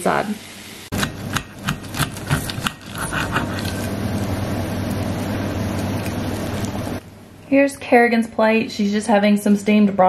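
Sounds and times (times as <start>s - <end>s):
low machine hum with hiss: 0.0s - 10.0s.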